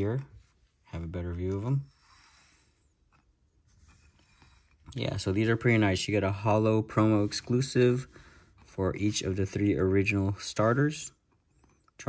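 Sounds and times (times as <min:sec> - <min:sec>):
faint rubbing of cards: 0:01.4 - 0:10.8.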